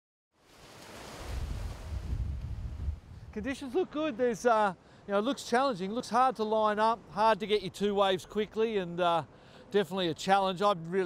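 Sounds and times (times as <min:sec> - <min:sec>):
ocean surf on rocky shore: 0:00.5 - 0:10.3
wind rumbling on microphone: 0:00.8 - 0:03.7.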